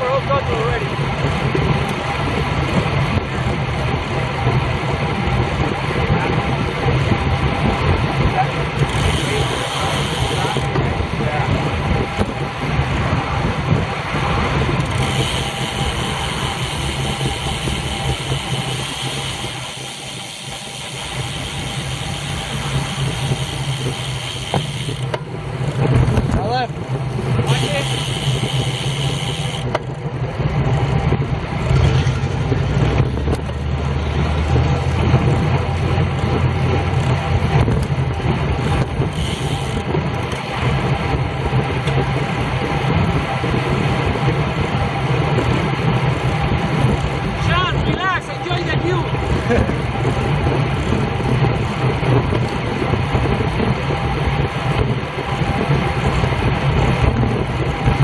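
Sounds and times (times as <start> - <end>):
motor traffic: 0.0 - 58.0
wind rushing over microphone: 0.0 - 58.0.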